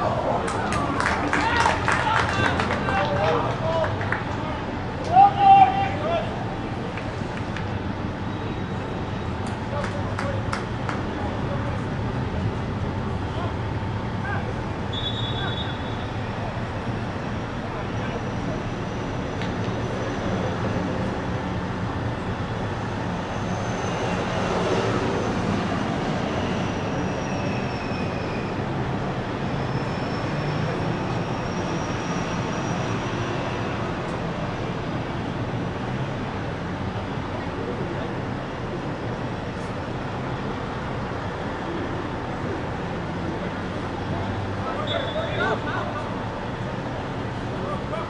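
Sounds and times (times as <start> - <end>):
constant rush of noise: 0.0 - 48.0.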